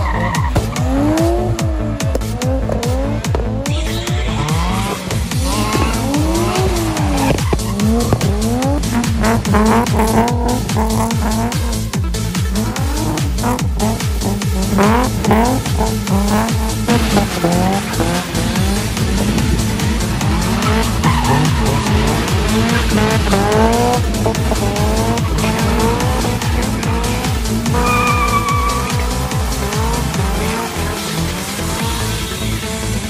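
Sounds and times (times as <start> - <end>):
background music with steady beat: 0.0 - 33.0
car engines revving hard: 0.0 - 33.0
tyres squealing and skidding: 0.0 - 33.0.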